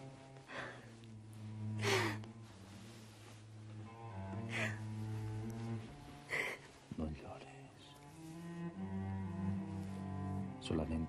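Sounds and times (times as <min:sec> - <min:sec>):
bowed low strings: 0:00.0 - 0:11.0.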